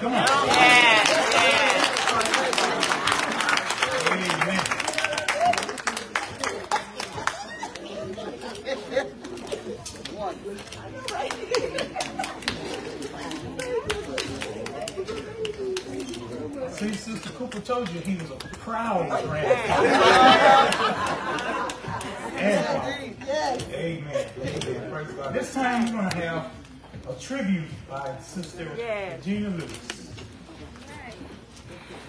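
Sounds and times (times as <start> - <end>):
indistinct chatter: 0.0 - 32.0
many people talking: 0.0 - 32.0.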